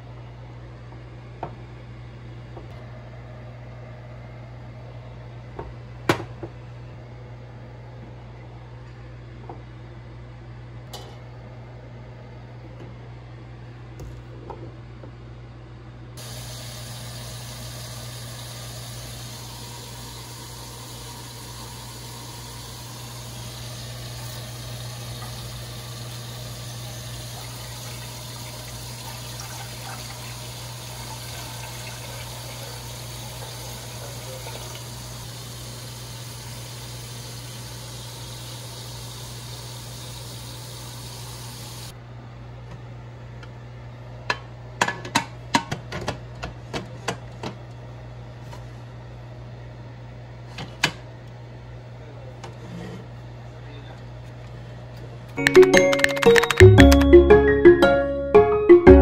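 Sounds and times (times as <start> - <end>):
water pouring into metal pot: 16.2 - 35.1.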